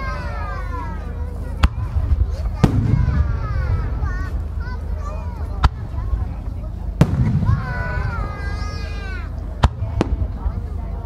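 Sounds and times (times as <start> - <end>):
continuous low rumble: 0.0 - 11.0
firework bangs: 1.6 - 4.9, 5.6 - 8.8, 9.6 - 10.5.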